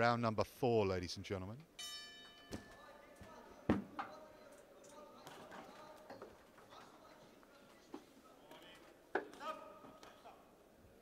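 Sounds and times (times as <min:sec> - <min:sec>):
boxing bell ringing: 0:01.8 - 0:03.1.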